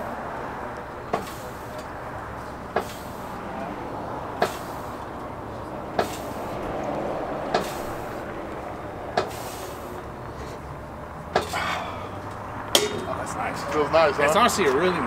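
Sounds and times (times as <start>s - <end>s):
steel frame clanking: 11.2s - 13.4s.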